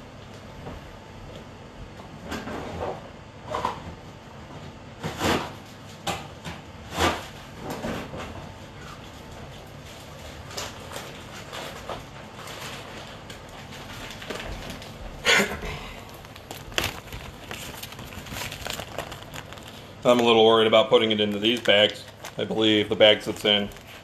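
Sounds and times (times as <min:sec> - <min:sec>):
rustling: 0:16.0 - 0:20.3.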